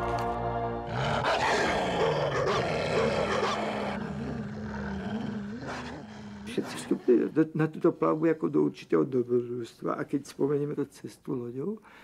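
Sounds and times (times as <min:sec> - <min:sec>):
wolf growling: 0:00.8 - 0:07.2.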